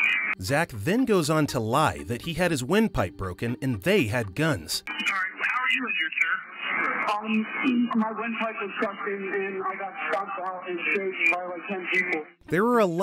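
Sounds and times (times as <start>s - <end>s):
people talking over telephone line: 1.4s - 13.0s.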